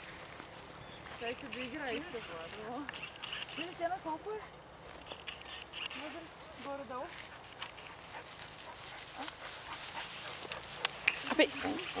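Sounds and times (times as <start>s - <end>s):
rustling in dry grass: 0.0s - 12.0s
sharp clicks: 2.5s - 3.8s, 5.0s - 6.2s, 7.4s - 7.9s.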